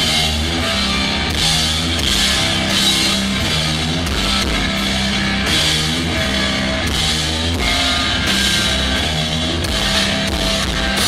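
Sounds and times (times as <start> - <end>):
bass guitar: 0.0 - 11.0
drum kit: 0.0 - 11.0
electric guitars: 0.0 - 11.0.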